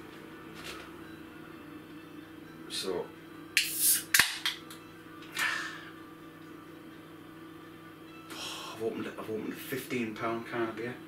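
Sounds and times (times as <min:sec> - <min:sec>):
can hissing: 0:03.6 - 0:04.4
can tab cracking open: 0:03.6 - 0:04.7.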